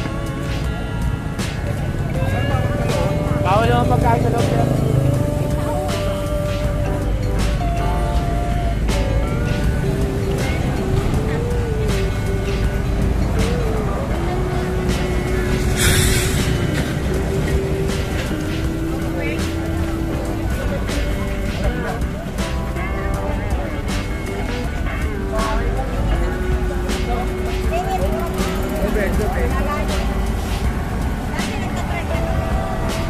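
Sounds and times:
background music: 0.0s - 33.0s
people's voices: 0.0s - 33.0s
traffic rumble: 0.0s - 33.0s
short loud hiss: 15.6s - 16.9s.

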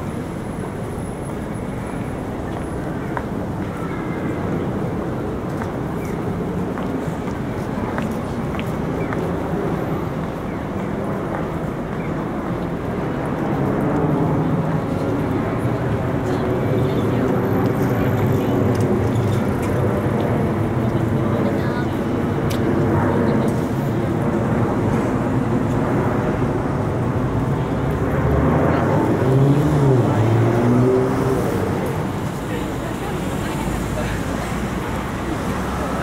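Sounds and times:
car traffic: 0.0s - 36.0s
passers-by talking: 0.0s - 36.0s.

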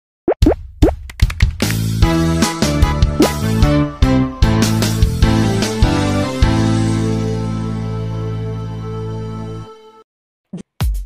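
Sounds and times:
music with held notes: 1.7s - 10.0s.

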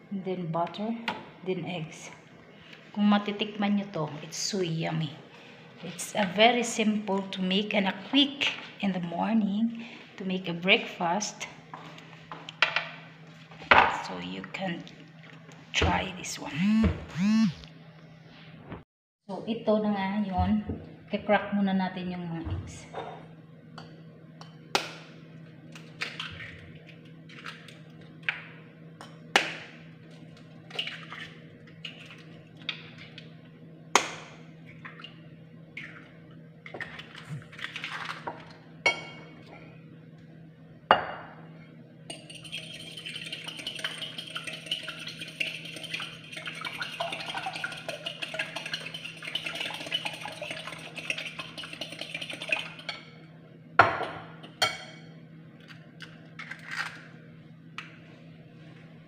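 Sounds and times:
fork beating eggs in glass bowl: 42.1s - 53.0s.

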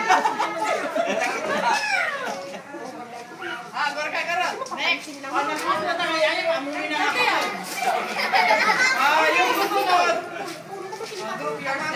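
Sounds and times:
children chattering: 0.0s - 11.9s.

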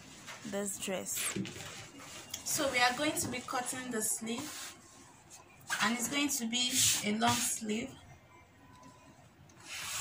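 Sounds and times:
fabric rubbing scrape: 9.6s - 10.0s.

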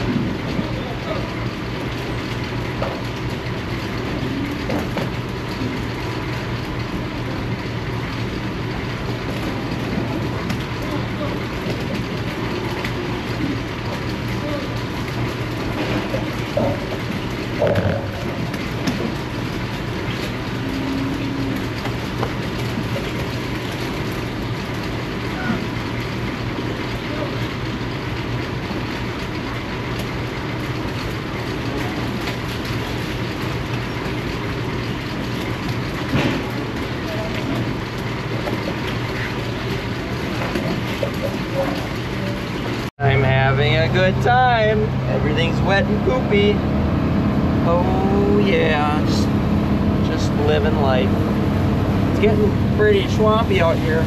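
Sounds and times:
cattle moving on wet concrete: 0.0s - 54.0s
ventilation fans humming: 0.0s - 54.0s.

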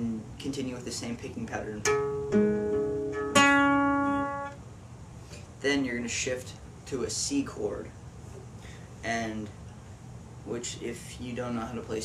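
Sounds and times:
acoustic guitar fingerpicked: 1.8s - 4.6s.

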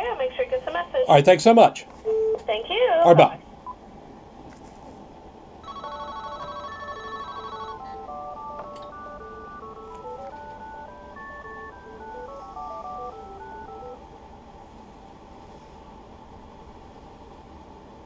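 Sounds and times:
phone ringtone beeping tune: 5.6s - 14.0s.

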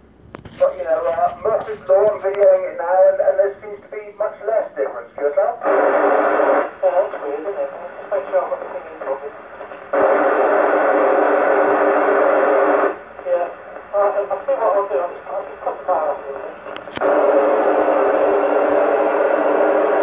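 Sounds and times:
weak voice over radio speaker: 0.5s - 10.4s, 13.2s - 19.9s
static hiss bursts: 5.6s - 20.0s.

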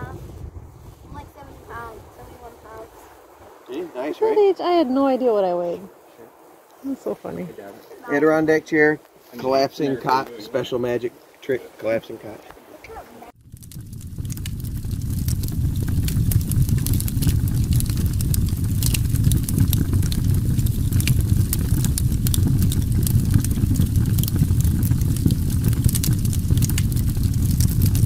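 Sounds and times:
steady low rumble: 0.0s - 6.7s, 13.3s - 28.0s
crackles and pops: 0.0s - 7.0s, 12.4s - 28.0s.

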